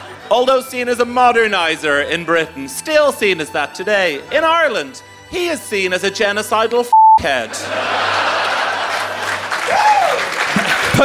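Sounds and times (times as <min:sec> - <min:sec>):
audience applauding and cheering: 0:08.0 - 0:11.0.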